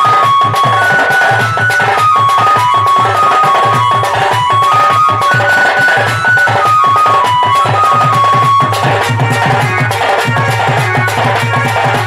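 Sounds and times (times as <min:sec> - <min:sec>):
fast drum strokes: 0:00.0 - 0:12.0
high held melody: 0:00.0 - 0:12.0.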